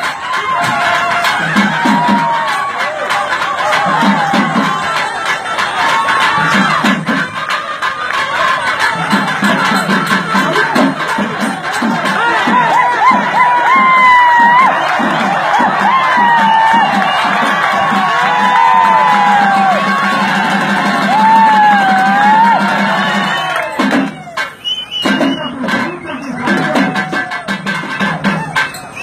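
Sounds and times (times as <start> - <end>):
crowd cheering and shouting: 0.0 - 29.0
fast barrel drum rhythm: 0.0 - 29.0.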